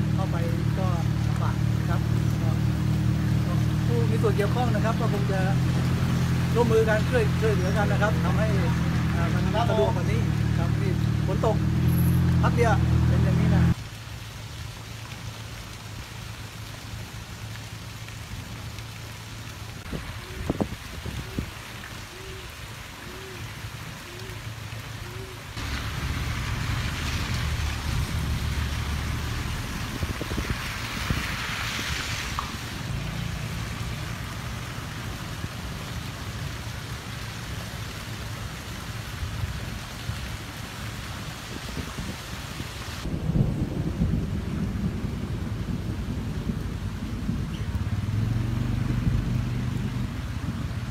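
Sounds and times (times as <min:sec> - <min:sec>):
rain falling on water: 0:00.0 - 0:50.9
wind rumble on microphone: 0:19.7 - 0:22.5, 0:25.6 - 0:36.3, 0:38.6 - 0:50.9.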